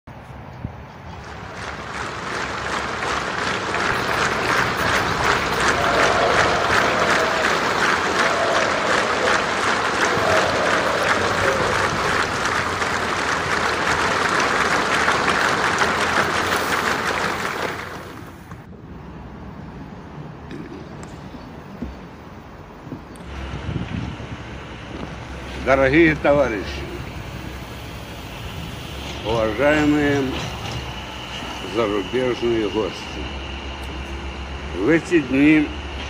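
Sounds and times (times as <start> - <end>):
audience applauding: 1.1 - 18.6.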